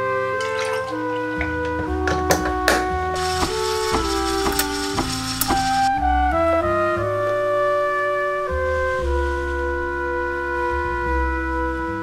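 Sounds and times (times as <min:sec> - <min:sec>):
background music: 0:00.0 - 0:12.0
electric milk frother whirring: 0:03.2 - 0:05.9
sharp clicks: 0:03.2 - 0:05.9.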